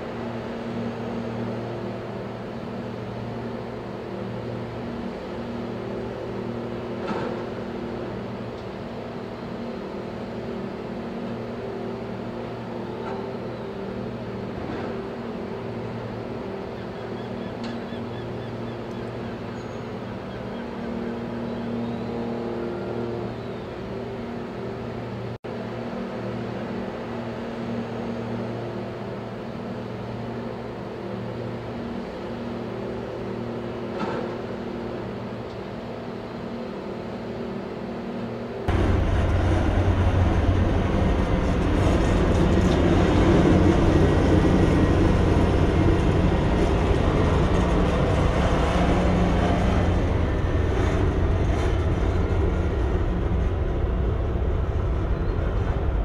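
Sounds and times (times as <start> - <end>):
diesel engine rumble: 38.6 - 56.0.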